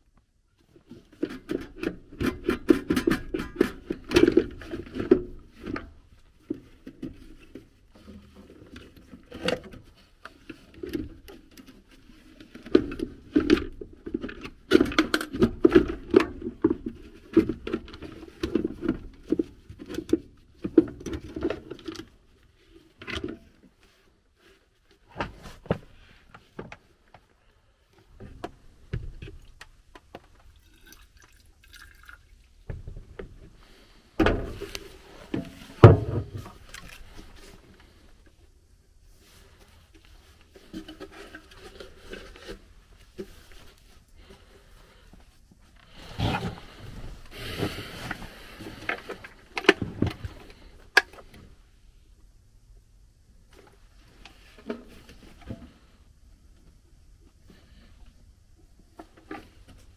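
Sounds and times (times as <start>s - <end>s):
scrapes and rustles of handling: 0.6s - 31.2s, 32.6s - 59.9s.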